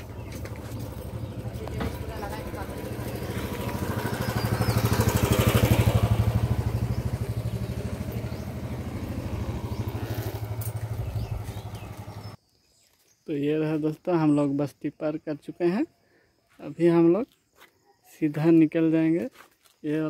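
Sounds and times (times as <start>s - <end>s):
small motorcycle engine running: 0.0s - 12.4s.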